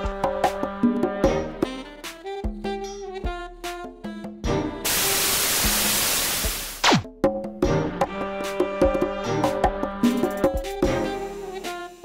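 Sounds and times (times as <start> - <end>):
tv static hiss: 4.9 - 7.0.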